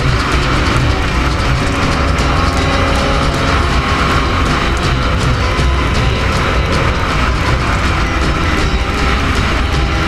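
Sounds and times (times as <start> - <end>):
motorcycle engine running: 0.0 - 10.0
music playing: 0.0 - 10.0.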